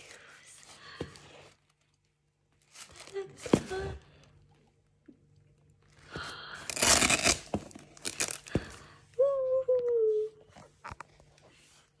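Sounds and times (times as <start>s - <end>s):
packaging tearing: 6.7s - 8.5s.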